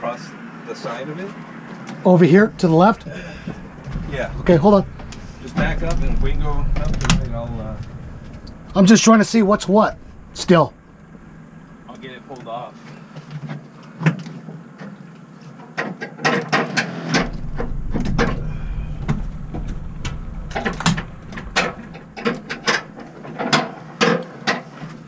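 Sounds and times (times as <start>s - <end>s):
boat engine running slowly: 2.5s - 12.1s, 17.2s - 23.1s.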